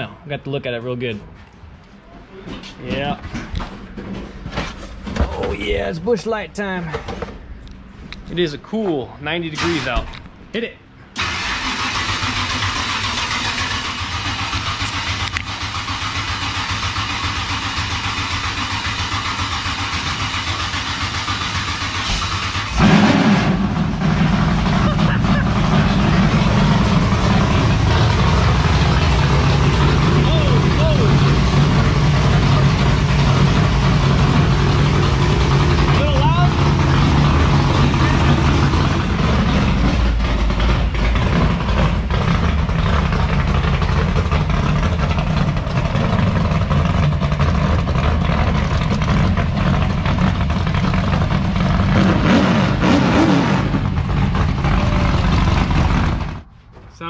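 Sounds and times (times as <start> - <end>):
car engine deep exhaust: 13.7 - 56.5.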